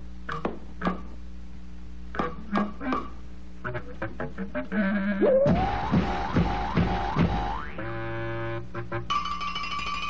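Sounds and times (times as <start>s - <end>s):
cartoon boing swoops: 5.2s - 6.0s, 7.3s - 7.8s.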